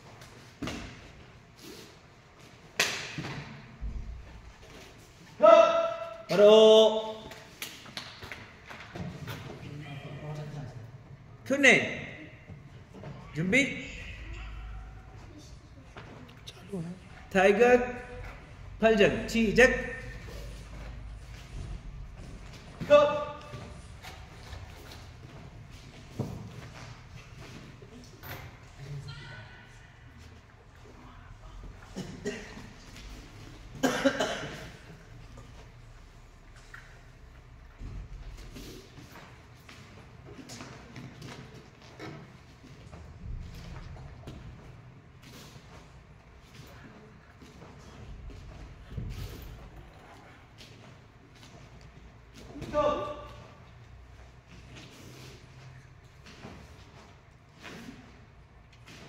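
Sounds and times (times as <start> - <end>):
person shouting: 5.4 - 7.1, 28.9 - 29.7.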